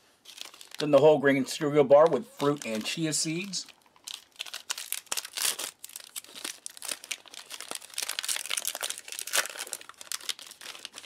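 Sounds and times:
plastic wrapper crinkling and tearing: 0.2s - 1.0s, 1.9s - 11.0s.

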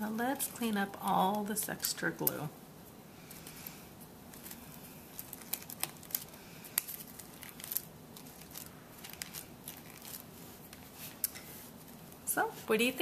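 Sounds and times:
paper rustling and crackling: 4.3s - 12.2s.

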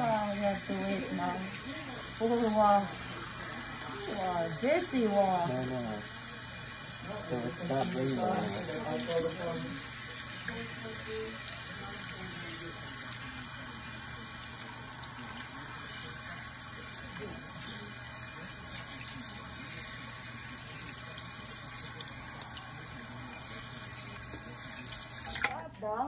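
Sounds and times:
water splashing from sprayer hose: 0.0s - 25.6s.

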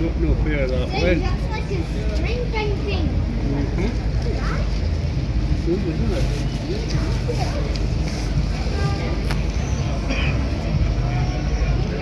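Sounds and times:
faint voices of passers-by: 0.0s - 12.0s
low street rumble: 0.0s - 12.0s.

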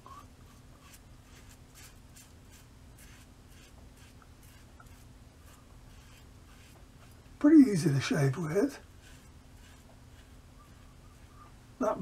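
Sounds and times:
razor scraping stubble: 0.8s - 11.5s.

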